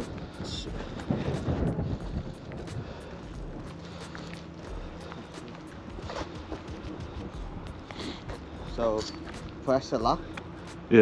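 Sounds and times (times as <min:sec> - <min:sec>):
wind rumbling on microphone: 0:00.0 - 0:09.6.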